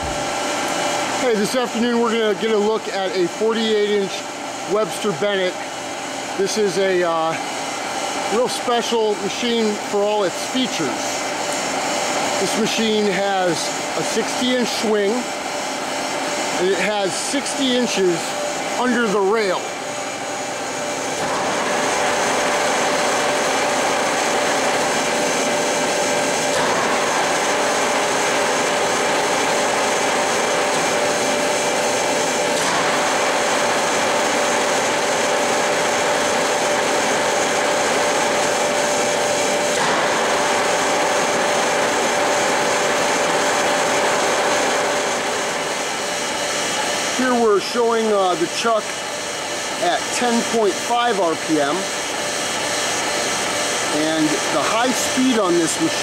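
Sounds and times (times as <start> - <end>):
lathe whirring and humming: 0.0 - 56.0.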